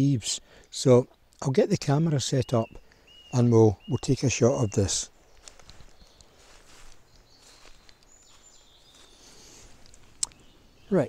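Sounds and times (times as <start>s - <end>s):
distant bird calls: 0.0s - 11.0s.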